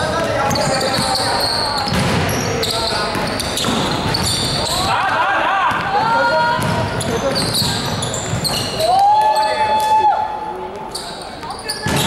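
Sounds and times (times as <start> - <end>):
basketball bouncing in a hall: 0.0 - 12.0.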